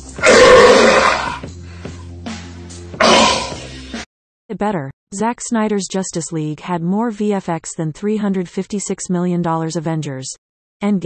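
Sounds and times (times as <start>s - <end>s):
man roaring like a lion: 0.2s - 1.4s, 3.0s - 3.6s.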